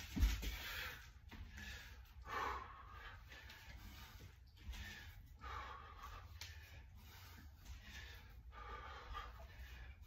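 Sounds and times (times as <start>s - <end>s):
man breathing hard: 0.0s - 10.0s.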